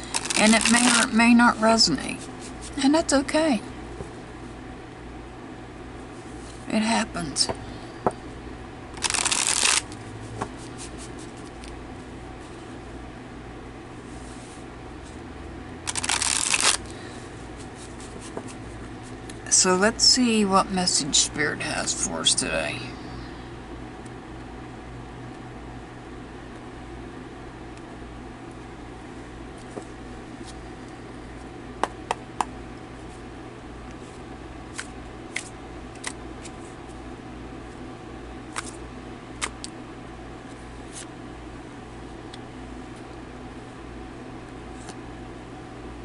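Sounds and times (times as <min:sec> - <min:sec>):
cards riffle-shuffled: 0:00.0 - 0:01.2, 0:09.0 - 0:11.8, 0:15.9 - 0:16.9, 0:17.6 - 0:18.6, 0:34.7 - 0:36.7, 0:38.5 - 0:38.8, 0:39.4 - 0:39.7
low steady hum: 0:00.0 - 0:46.0.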